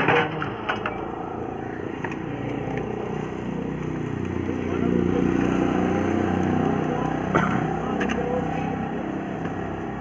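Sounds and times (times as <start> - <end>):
low mechanical drone: 0.0 - 10.0.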